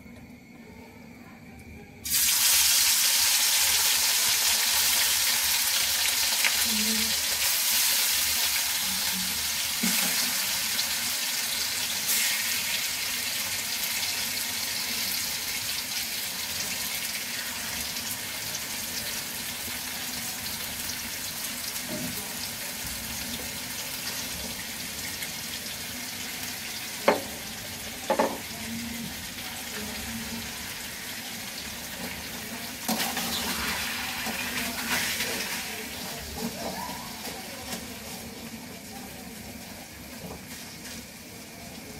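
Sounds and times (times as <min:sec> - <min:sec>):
meat sizzling in oil: 0:02.0 - 0:41.9.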